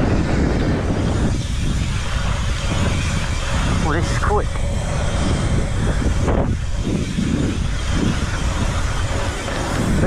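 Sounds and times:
tyres hissing on asphalt: 0.0 - 10.0
wind buffeting microphone: 0.0 - 10.0.

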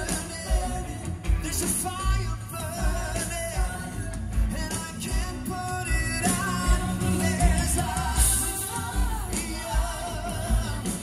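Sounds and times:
live pop-rock band: 0.0 - 11.0
man singing: 0.0 - 11.0.

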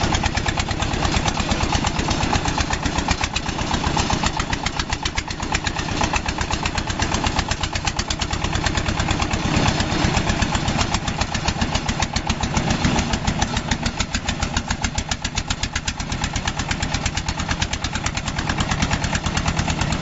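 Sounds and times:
harvester engine chugging: 0.0 - 20.0.

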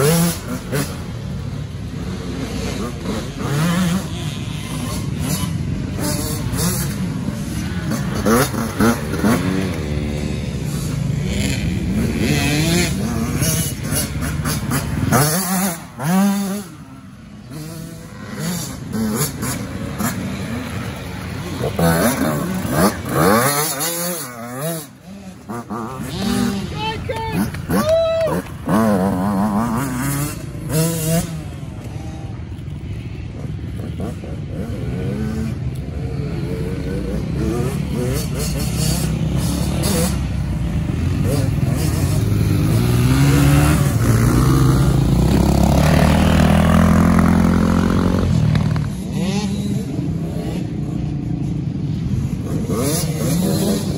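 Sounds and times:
dirt bike engine revving: 0.0 - 32.4, 33.6 - 51.1.

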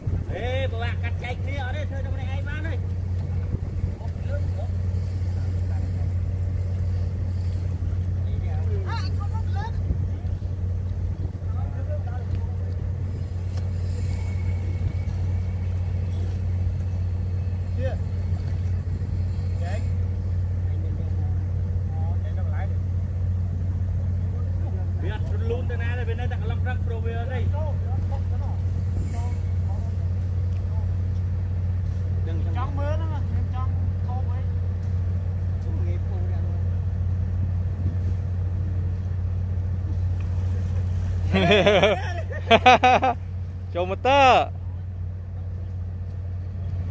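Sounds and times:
small engine droning: 0.0 - 46.9
faint voices: 0.2 - 34.7.

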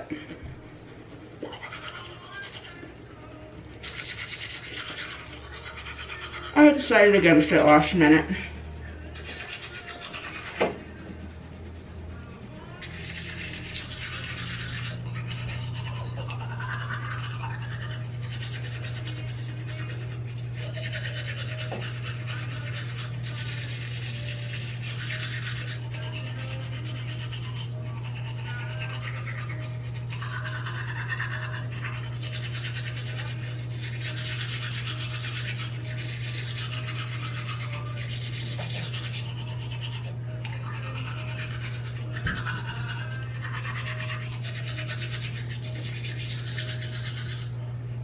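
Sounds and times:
steady low hum: 0.0 - 48.0
toothbrush scrubbing teeth: 1.3 - 11.9, 12.7 - 47.7.

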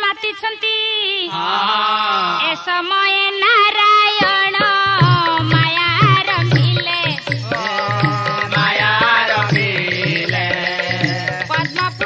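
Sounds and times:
lower voice singing: 7.2 - 12.0.

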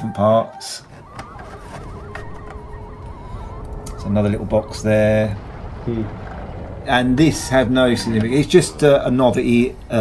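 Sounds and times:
high warbling tone: 0.8 - 10.0.

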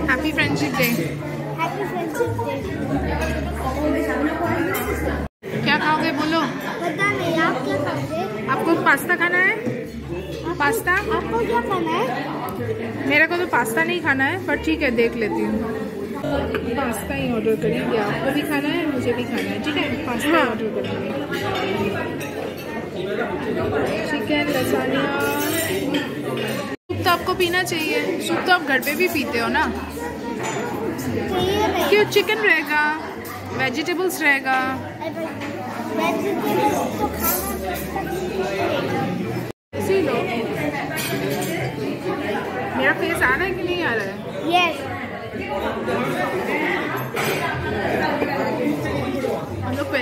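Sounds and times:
murmur of voices: 0.0 - 50.0
restaurant diners chatter: 0.0 - 50.0
tableware clinking: 0.4 - 1.2, 3.0 - 5.3, 23.8 - 32.2, 36.5 - 38.5, 40.9 - 41.8, 46.8 - 48.8.

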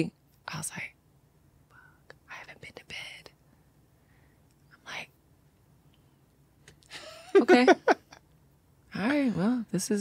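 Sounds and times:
woman whispering: 0.5 - 1.0, 1.7 - 3.4, 4.7 - 5.2.

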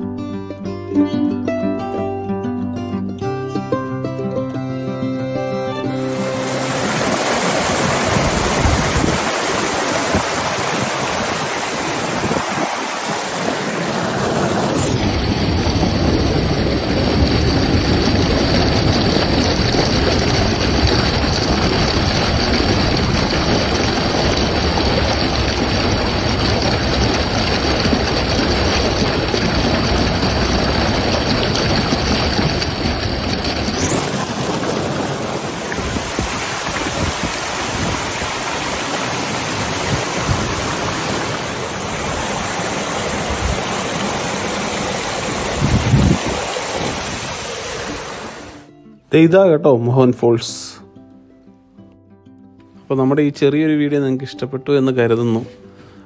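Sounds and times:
rushing stream and waterfall: 5.2 - 15.2, 33.6 - 48.7.

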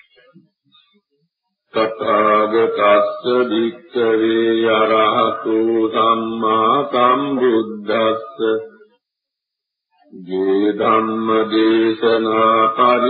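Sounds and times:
man chanting slowly: 1.8 - 8.8, 10.2 - 13.0.

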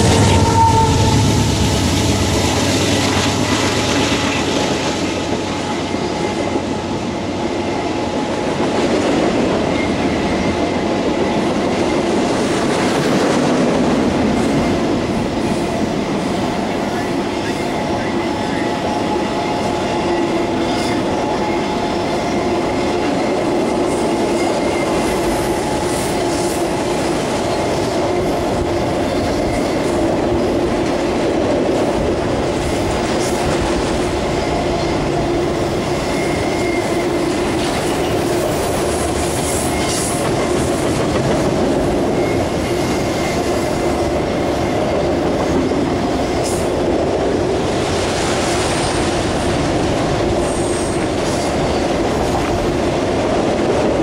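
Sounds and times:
clickety-clack over rail joints: 0.0 - 54.0
train wheels on rails: 0.0 - 54.0.

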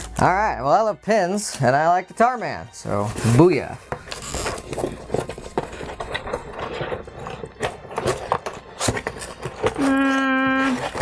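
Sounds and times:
rummaging in cardboard box: 2.8 - 11.0.

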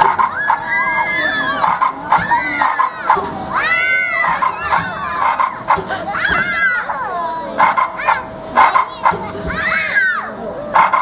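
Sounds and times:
young children squealing: 0.2 - 7.3, 9.5 - 10.5.

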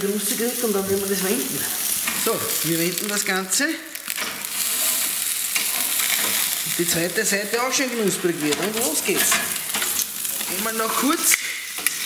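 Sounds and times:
steak sizzling loudly: 0.0 - 12.0.

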